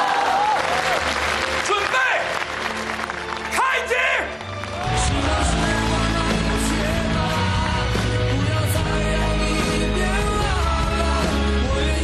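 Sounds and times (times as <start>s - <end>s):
audience applauding: 0.0s - 8.7s
background music: 0.0s - 12.0s.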